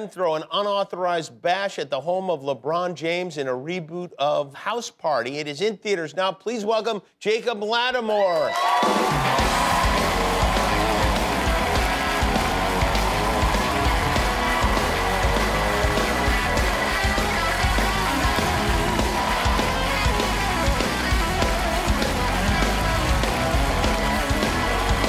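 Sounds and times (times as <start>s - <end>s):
audience applause and cheering: 8.3s - 25.0s
band playing walk-on music: 8.8s - 25.0s.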